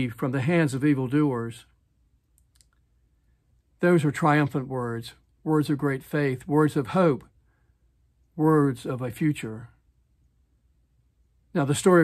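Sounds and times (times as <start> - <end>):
man speaking: 0.0 - 1.8, 3.8 - 7.4, 8.3 - 9.8, 11.5 - 12.0
faint tiny clicks: 2.2 - 2.9.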